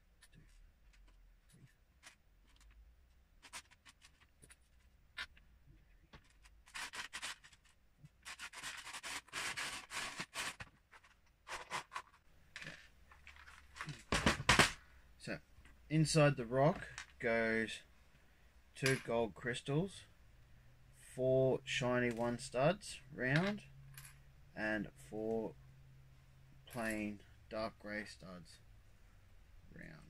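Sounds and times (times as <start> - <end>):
rustling: 0.2 - 14.5.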